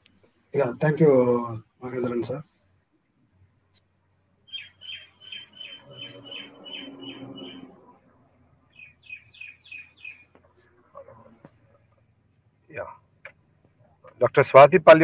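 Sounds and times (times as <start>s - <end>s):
bird chirping: 3.7s - 12.0s.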